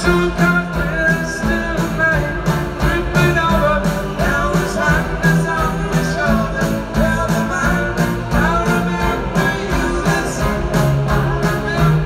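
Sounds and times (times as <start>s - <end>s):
live pop-rock band with strings: 0.0s - 12.0s.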